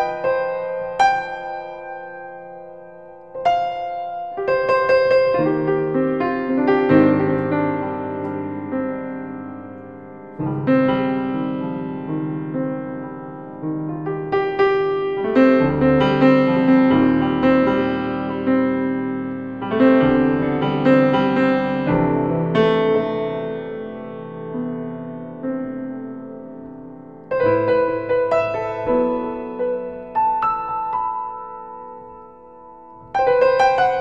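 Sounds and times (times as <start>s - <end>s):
grand piano improvisation: 0.0s - 34.0s.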